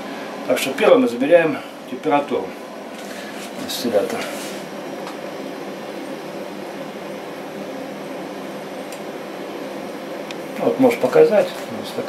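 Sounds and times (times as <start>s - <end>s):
steady hum and rush: 0.0s - 12.0s.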